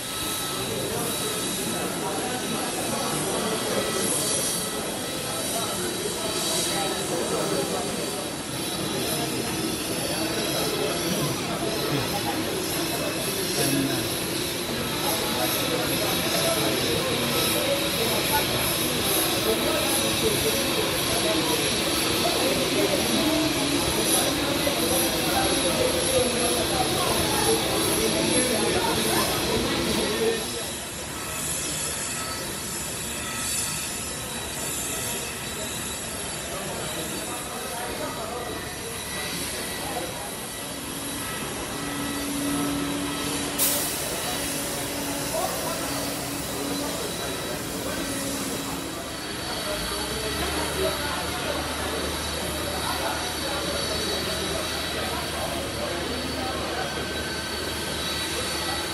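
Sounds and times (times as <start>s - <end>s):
jet engine whine: 0.0s - 58.9s.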